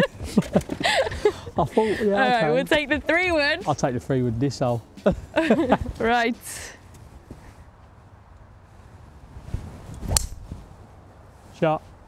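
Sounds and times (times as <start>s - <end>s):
golf club swing swish: 9.4s - 10.7s
golf club striking ball: 10.0s - 10.5s.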